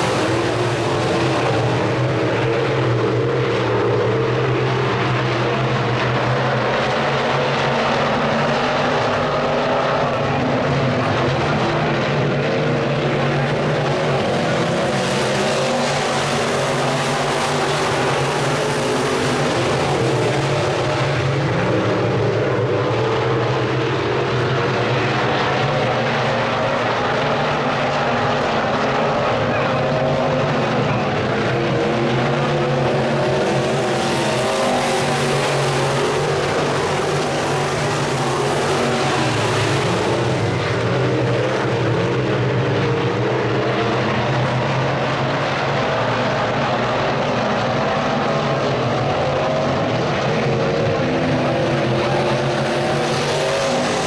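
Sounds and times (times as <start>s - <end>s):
race car engines droning: 0.0s - 54.0s.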